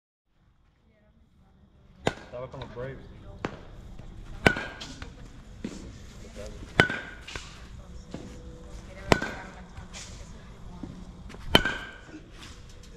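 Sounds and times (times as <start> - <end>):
baseball bat hitting ball: 2.0 - 2.8, 3.4 - 5.8, 6.6 - 7.6, 9.0 - 9.6, 11.3 - 12.3.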